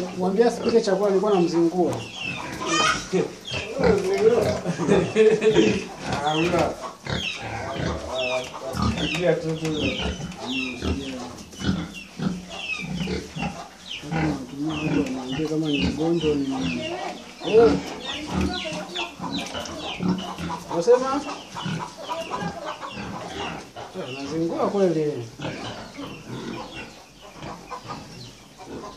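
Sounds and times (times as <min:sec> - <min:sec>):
chickens clucking: 0:00.0 - 0:28.9
pigs grunting: 0:00.0 - 0:28.9.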